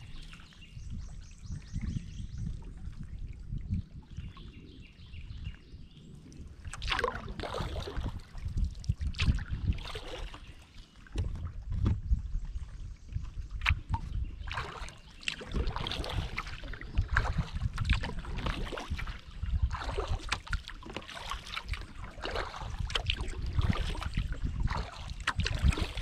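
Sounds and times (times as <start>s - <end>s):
paddle splashing water: 0.0s - 26.0s.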